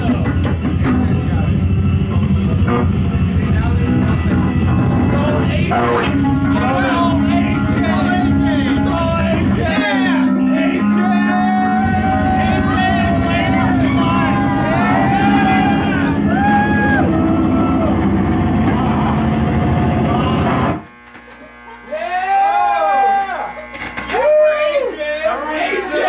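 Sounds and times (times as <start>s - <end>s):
loud electronic music: 0.0s - 20.8s
voices shouting: 6.6s - 18.1s.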